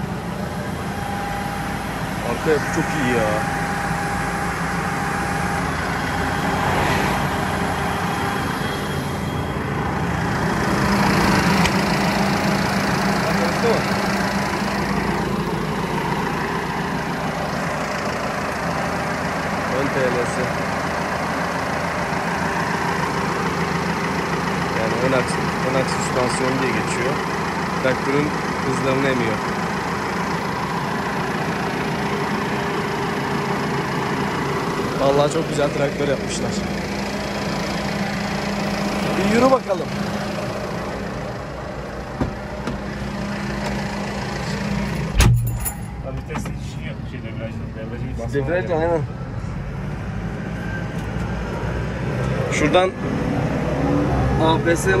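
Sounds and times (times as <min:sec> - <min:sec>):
tractor diesel engine idling: 0:00.0 - 0:49.8, 0:54.4 - 0:55.0.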